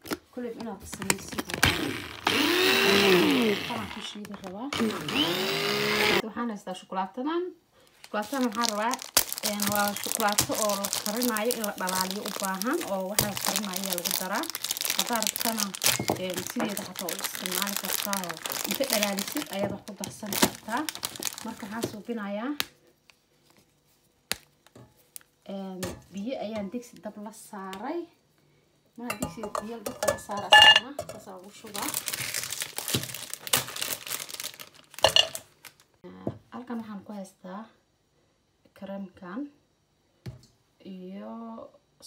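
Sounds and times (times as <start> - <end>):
chocolate wrapper crinkling: 8.0 - 22.1, 31.6 - 36.0.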